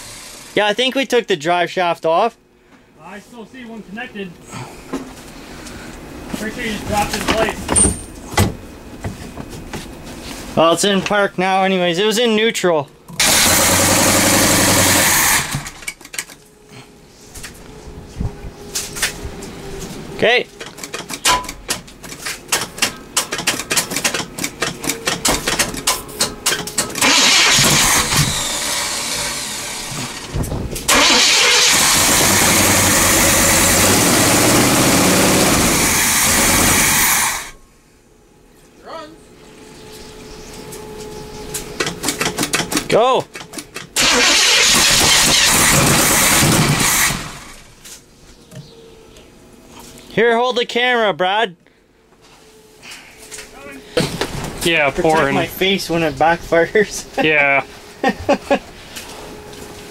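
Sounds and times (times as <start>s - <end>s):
engine sputtering: 13.1s - 16.2s, 20.5s - 37.6s, 41.8s - 47.8s
engine starter cranking: 13.1s - 16.4s, 22.5s - 37.6s, 41.8s - 47.7s.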